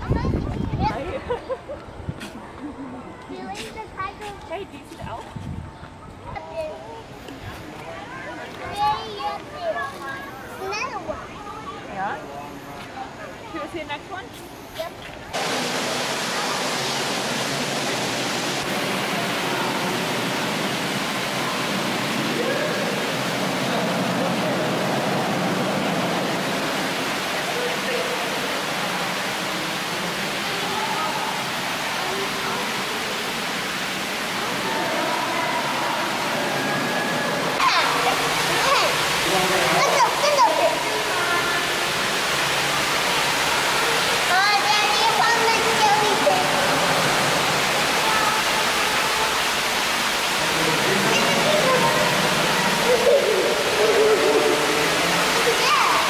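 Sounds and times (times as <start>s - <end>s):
water rushing: 6.5s - 56.0s
indistinct voices: 14.7s - 56.0s.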